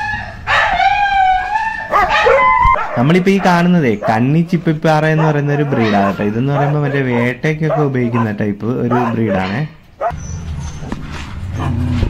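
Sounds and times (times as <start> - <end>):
dog barking: 0.4 - 4.3, 5.0 - 10.2, 11.6 - 11.9.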